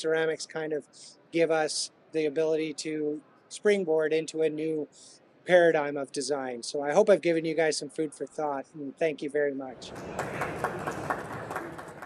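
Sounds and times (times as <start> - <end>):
audience applauding: 9.9 - 12.0.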